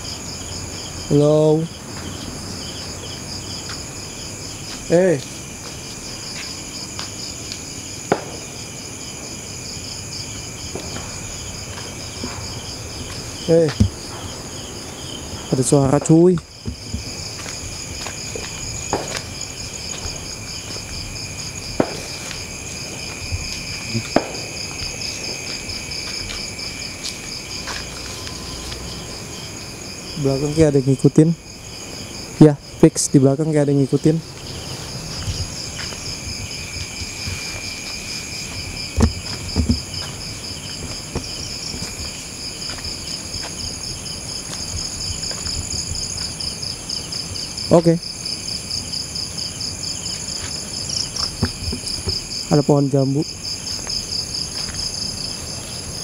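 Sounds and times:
high-pitched insect trilling: 0.0s - 56.0s
insects chirping: 0.0s - 56.0s.

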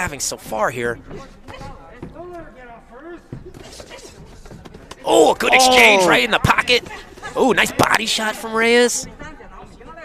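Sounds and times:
voices shouting: 5.1s - 6.4s.

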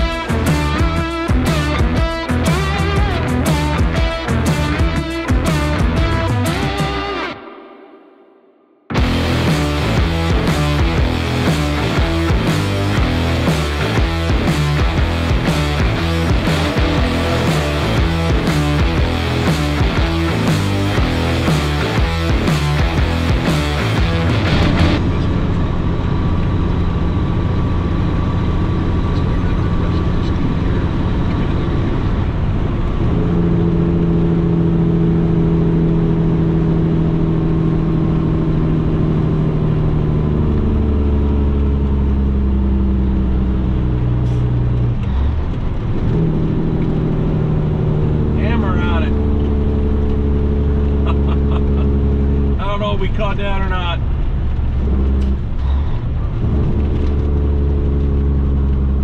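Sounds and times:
truck diesel engine running: 0.0s - 7.0s, 8.9s - 59.0s.

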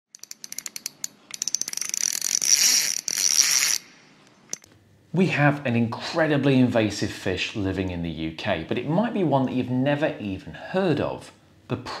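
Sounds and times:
ratchet clicking into buzz: 0.1s - 4.7s.

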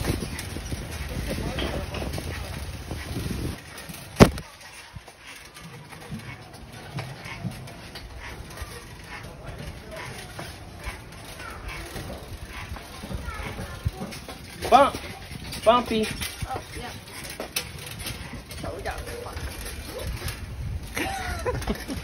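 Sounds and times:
faint scattered voices: 1.0s - 15.4s.

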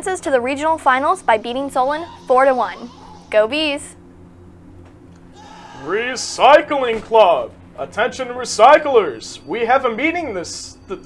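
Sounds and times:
low steady hum: 0.0s - 11.0s
man speaking: 5.8s - 11.0s.

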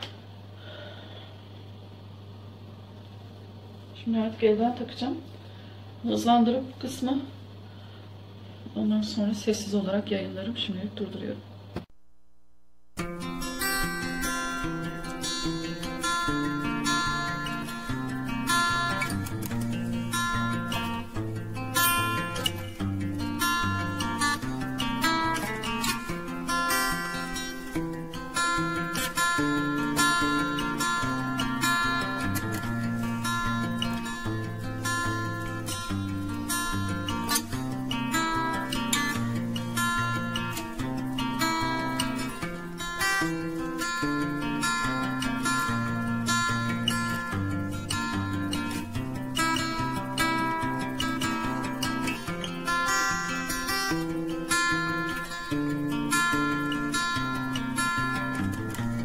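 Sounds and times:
acoustic guitar instrumental: 11.8s - 59.0s.

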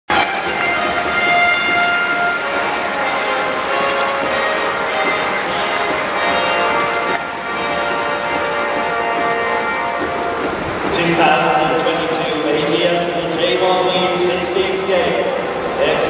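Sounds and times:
bell-like music over loudspeakers: 0.1s - 15.2s.

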